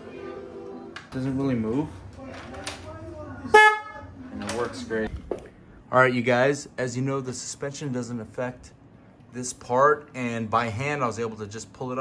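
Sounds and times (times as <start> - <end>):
loud horn honk: 3.5 - 4.1.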